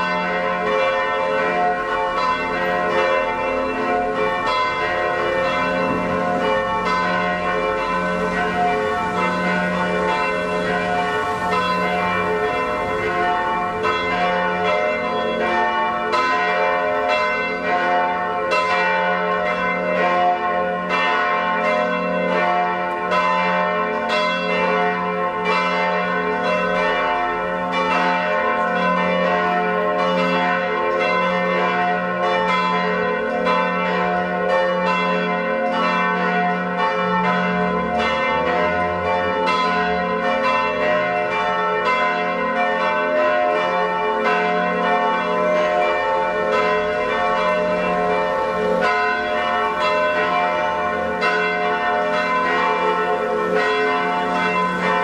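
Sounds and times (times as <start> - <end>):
church bells pealing: 0.0 - 55.0.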